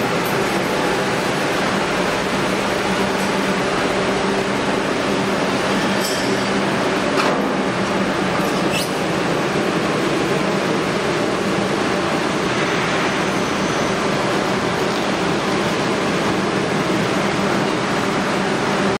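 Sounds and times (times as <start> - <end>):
blower rushing air: 0.0 - 19.0.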